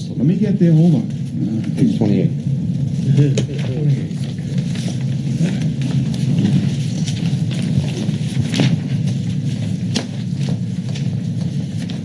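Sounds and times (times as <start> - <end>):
low room rumble: 0.0 - 12.0
papers rustling and pages turning: 0.7 - 12.0.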